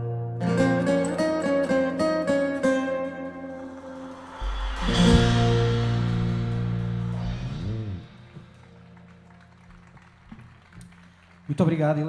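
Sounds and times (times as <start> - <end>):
guitar bass and percussion trio: 0.0 - 11.2
stage hum: 3.5 - 12.0.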